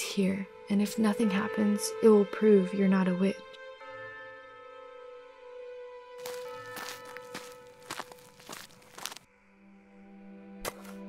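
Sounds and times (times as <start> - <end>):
footsteps on gravel: 6.2 - 9.2.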